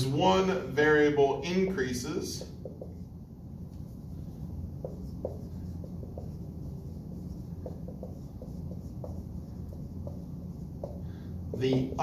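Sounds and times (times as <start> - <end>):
steady low hum: 0.0 - 12.0
marker squeaking on whiteboard: 2.5 - 3.1, 4.6 - 12.0.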